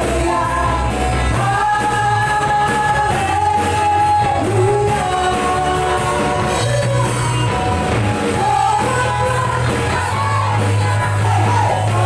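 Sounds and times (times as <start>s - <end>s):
bass guitar: 0.0s - 12.0s
electric guitar: 0.0s - 12.0s
keyboard: 0.0s - 12.0s
steady drum beat: 0.0s - 12.0s
women singing: 0.0s - 12.0s.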